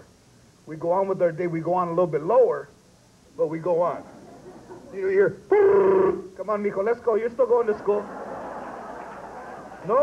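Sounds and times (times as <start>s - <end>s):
man talking: 3.4s - 4.2s, 4.9s - 8.1s
crowd laughing: 4.0s - 5.1s, 7.6s - 10.0s.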